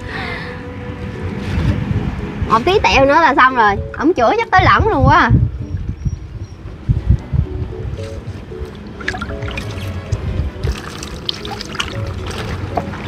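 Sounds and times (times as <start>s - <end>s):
soft background music: 0.0s - 13.0s
water trickling and splashing: 8.6s - 13.0s.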